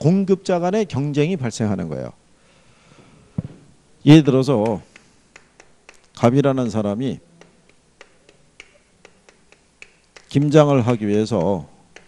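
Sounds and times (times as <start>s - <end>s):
man talking: 4.0s - 4.9s, 6.2s - 7.3s, 10.3s - 11.8s
chalk tapping on blackboard: 4.6s - 12.0s.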